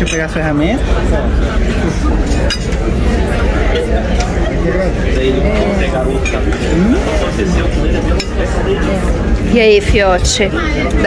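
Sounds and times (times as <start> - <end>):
murmur of diners' voices: 0.0 - 11.0
cutlery clinking: 2.2 - 2.9.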